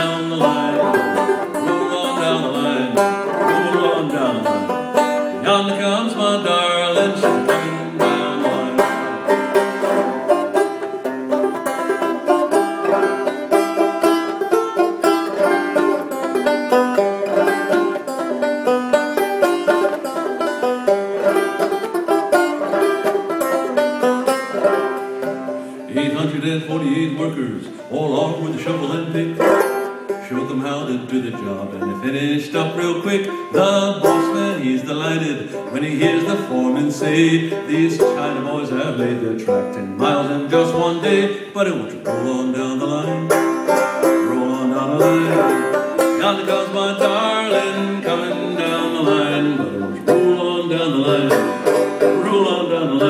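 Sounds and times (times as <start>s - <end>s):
banjo plucked solo: 0.0s - 53.0s.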